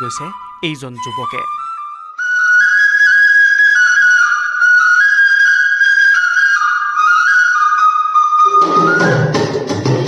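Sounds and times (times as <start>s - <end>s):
whistle-like wind instrument melody: 0.0s - 9.8s.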